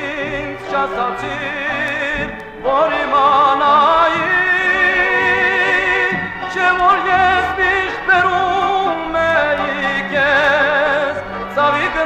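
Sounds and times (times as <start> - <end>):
instrumental accompaniment: 0.0 - 12.0
man singing with vibrato: 0.0 - 12.0.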